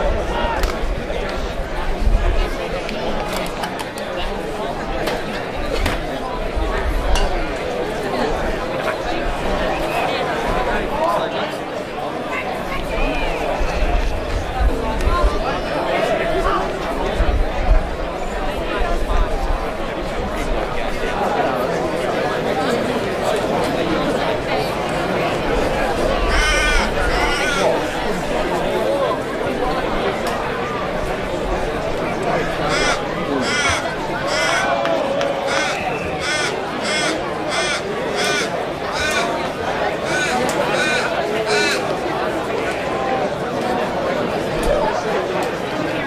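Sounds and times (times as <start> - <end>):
several voices chattering: 0.0 - 46.0.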